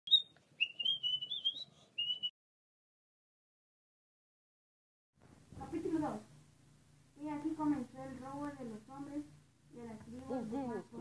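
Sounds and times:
person whistling a tune: 0.1s - 2.3s.

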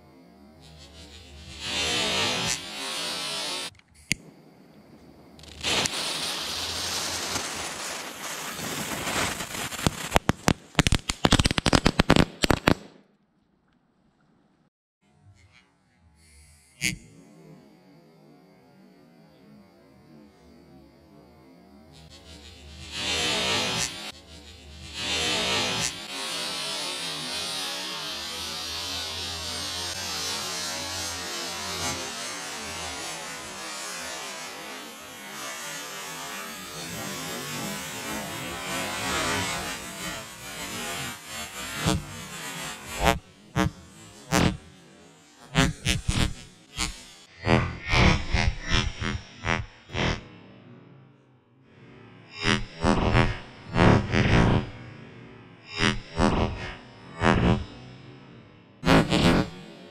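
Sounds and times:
low hum: 0.0s - 9.8s
firework bangs and crackles: 1.5s - 13.0s, 37.8s - 44.7s
fountain firework hissing: 5.4s - 12.8s.

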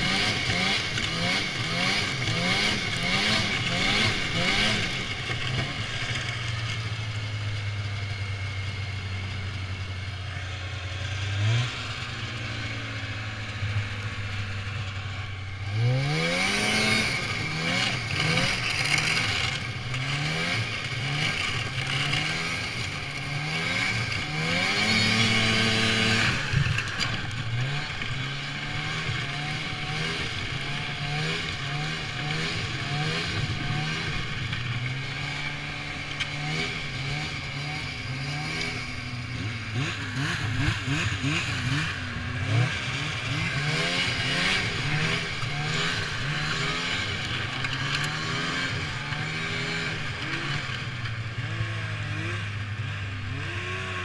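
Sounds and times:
snowmobile engine revving: 0.0s - 54.0s.

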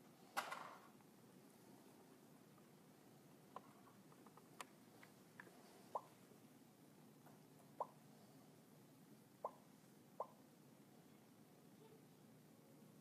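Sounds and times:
faint room hiss: 0.0s - 13.0s.

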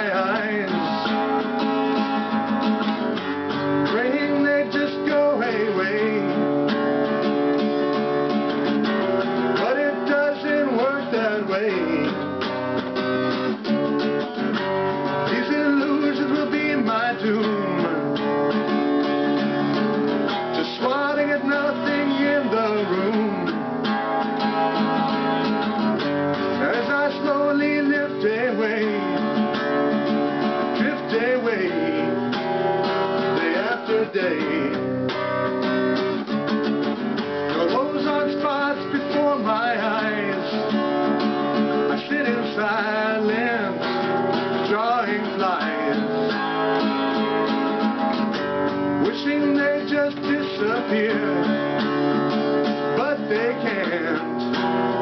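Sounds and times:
man singing: 0.0s - 1.6s, 3.8s - 6.6s, 9.5s - 12.4s, 15.1s - 18.3s, 20.5s - 23.7s, 26.5s - 29.6s, 30.6s - 32.4s, 33.2s - 34.9s, 37.5s - 46.2s, 49.0s - 51.9s, 52.9s - 54.6s
acoustic guitar strumming: 0.0s - 55.0s.

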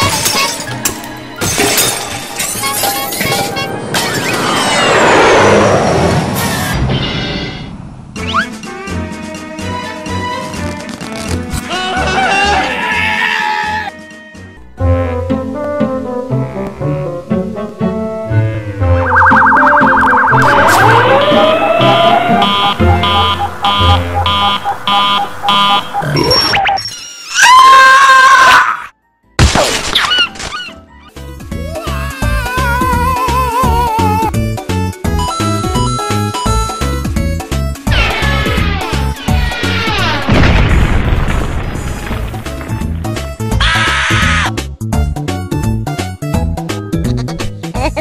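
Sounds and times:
background music: 0.0s - 3.9s, 8.1s - 26.5s, 29.0s - 48.0s
rising glides: 4.1s - 6.8s, 18.3s - 27.3s
warbling siren-like alarm tone: 18.9s - 27.0s
repeating electronic beep: 19.0s - 27.2s
cartoon breaking crash: 29.4s - 30.7s, 37.9s - 44.4s.

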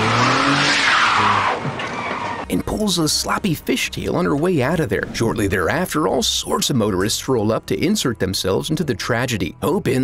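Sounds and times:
car tyres squealing in a skid: 0.0s - 2.5s.

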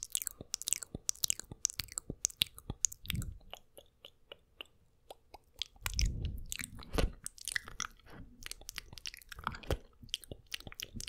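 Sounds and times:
wet mouth clicks and licking: 0.0s - 11.0s.

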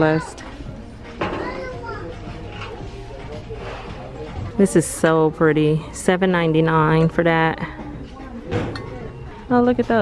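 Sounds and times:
faint background voices: 0.0s - 6.1s, 7.0s - 10.0s.

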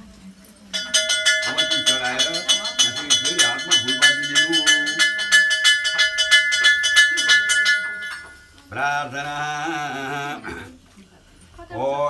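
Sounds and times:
small brass hand bell ringing: 0.7s - 8.6s.

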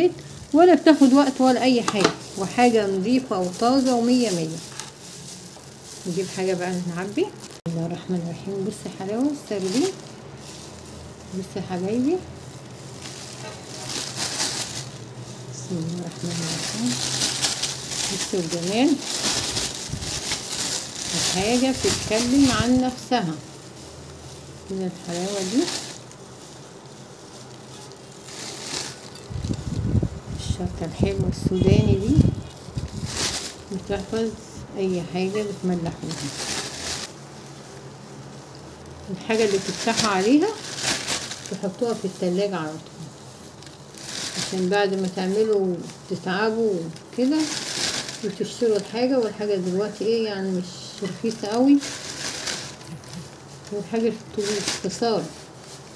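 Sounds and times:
plastic bag crinkling: 0.0s - 55.9s
steady background hum: 0.0s - 55.9s.

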